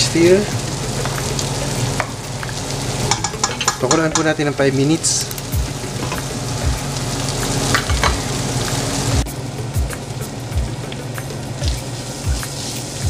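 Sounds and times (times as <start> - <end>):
meat and beans sizzling in a pan: 0.0 - 13.0
background music with drum beat: 0.3 - 4.4, 5.3 - 13.0.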